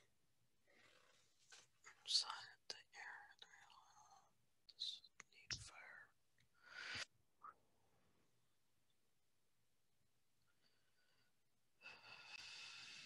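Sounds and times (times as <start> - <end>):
faint whispered speech: 1.9 - 6.2.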